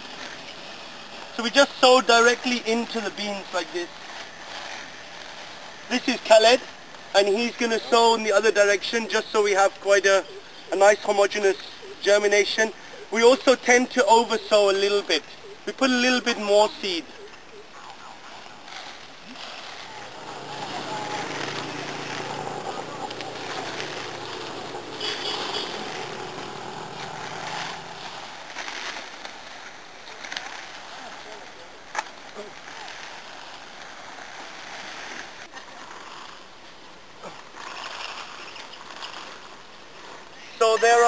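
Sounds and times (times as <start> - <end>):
foliage rustling and swishing: 0.0 - 8.0, 8.7 - 40.4.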